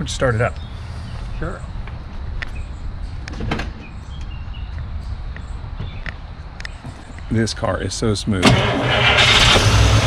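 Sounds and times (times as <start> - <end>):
car engine rumbling at idle: 8.4 - 10.0.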